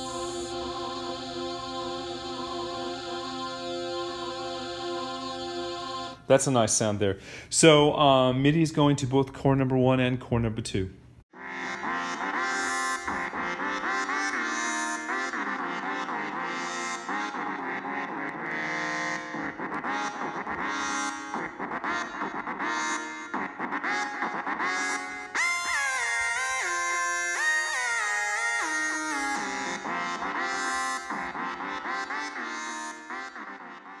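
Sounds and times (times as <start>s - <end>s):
sustained synthesizer chords: 0.0s - 6.2s, 11.4s - 25.4s
stepping sliding synth notes: 11.4s - 34.0s.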